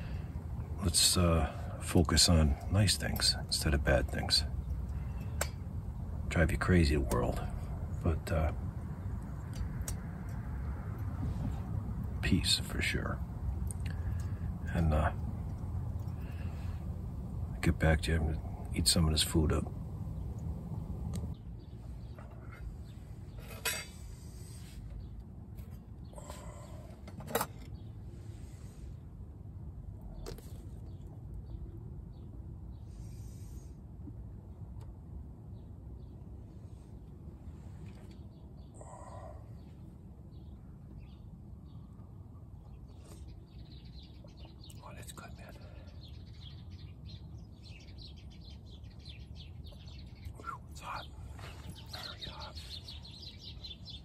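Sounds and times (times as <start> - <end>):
low background hum: 0.0 - 54.0
faint bird chirps: 35.5 - 54.0.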